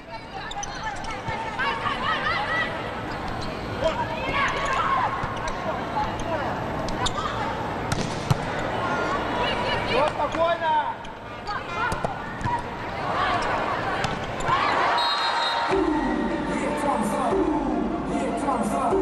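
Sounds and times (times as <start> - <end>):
arena crowd noise: 0.0 - 19.0
volleyball slaps: 7.9 - 8.5
players shouting: 11.6 - 19.0.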